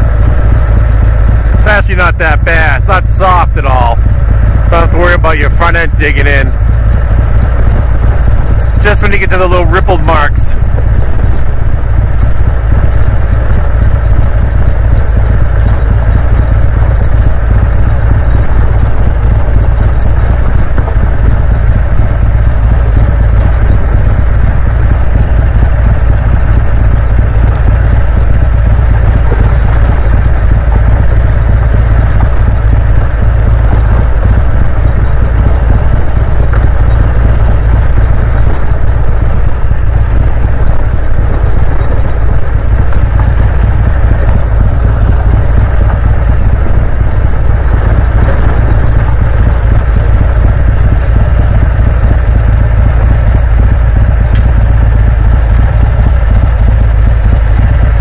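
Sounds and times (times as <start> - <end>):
motorcycle engine rumble: 0.0 - 58.0
tyres on dirt road: 0.0 - 58.0
wind noise: 6.1 - 58.0.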